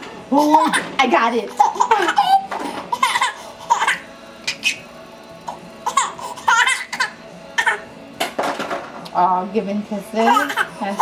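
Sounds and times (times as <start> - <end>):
baby laughing: 0.4 - 0.8, 1.5 - 4.8, 5.8 - 7.8, 10.3 - 11.0.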